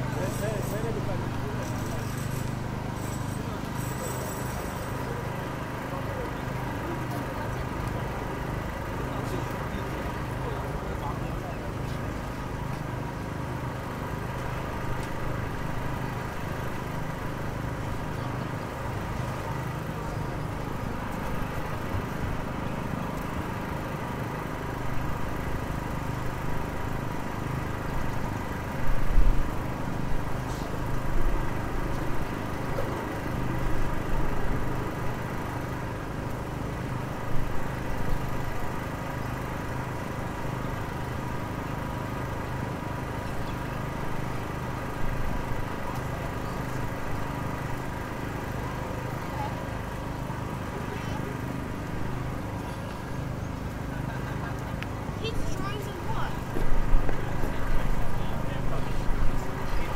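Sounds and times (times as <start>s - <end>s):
engine idling: 0.0s - 59.9s.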